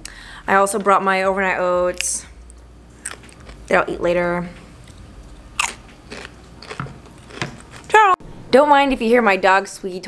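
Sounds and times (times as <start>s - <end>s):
chip crunching and chewing: 3.0s - 3.7s, 4.8s - 7.9s.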